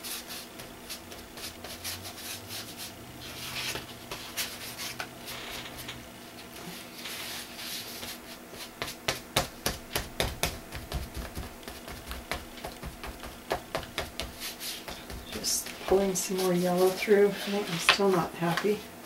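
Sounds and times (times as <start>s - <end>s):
sponge rubbing on paper: 6.6s - 9.0s, 14.0s - 18.2s
sponge tapping paint on paper: 8.8s - 16.0s.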